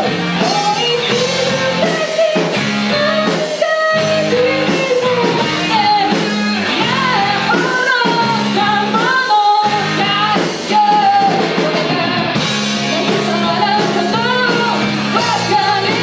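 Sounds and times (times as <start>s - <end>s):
bass guitar: 0.0s - 16.0s
drum kit: 0.0s - 16.0s
electric guitars: 0.0s - 16.0s
person singing lead melody: 0.0s - 16.0s.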